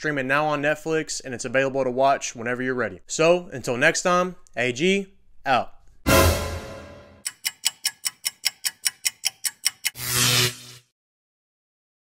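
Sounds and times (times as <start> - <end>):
loud rushing swell: 6.1 - 7.2
sharp ticking: 7.2 - 10.0.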